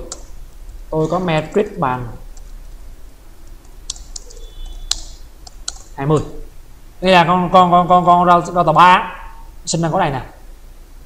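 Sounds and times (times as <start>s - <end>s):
keyboard keystrokes: 3.5s - 6.0s.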